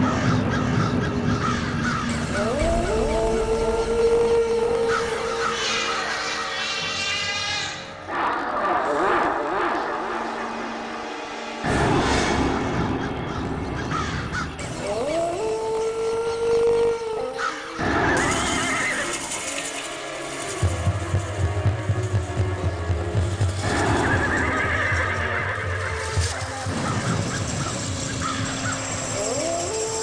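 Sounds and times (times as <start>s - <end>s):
dramatic background score: 0.0s - 30.0s
low pulsing drone: 0.0s - 30.0s
horse whinny: 23.7s - 26.2s.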